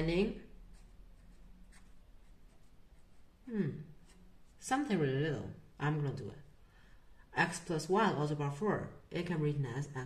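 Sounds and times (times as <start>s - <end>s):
felt-tip pen scratching paper: 0.7s - 3.3s.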